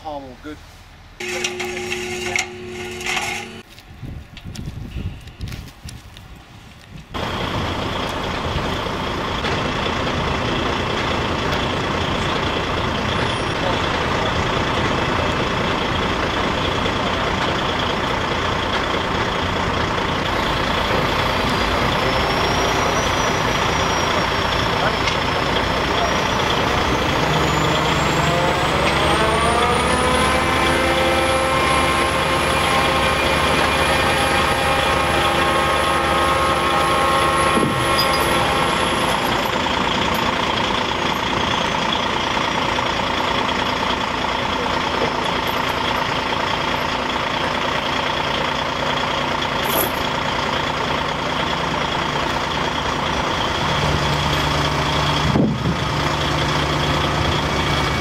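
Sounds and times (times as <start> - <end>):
heavy diesel crane engine: 0.2 - 4.0, 7.1 - 58.0.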